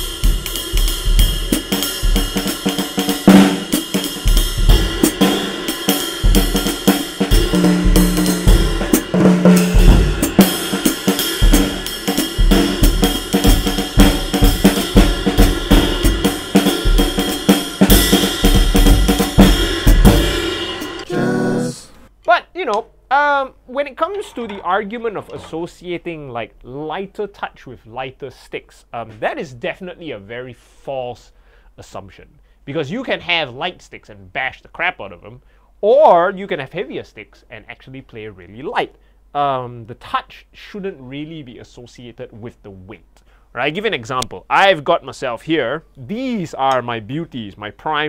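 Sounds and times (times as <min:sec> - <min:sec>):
ride and hi-hat cymbals: 0:00.0 - 0:21.1
snare and bass drum strokes: 0:00.0 - 0:21.3.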